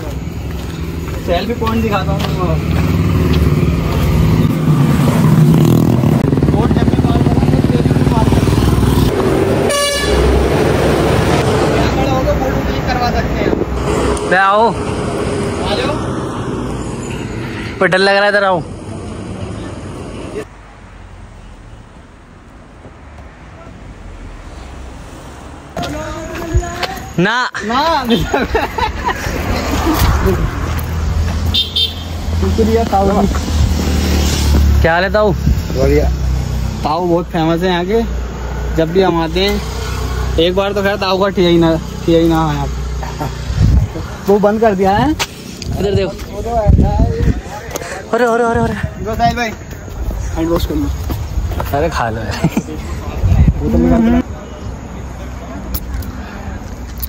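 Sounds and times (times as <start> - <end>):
vehicle engine rumble passing: 0.0 - 17.8, 28.2 - 56.9
horn toot: 9.5 - 10.7, 31.4 - 32.2.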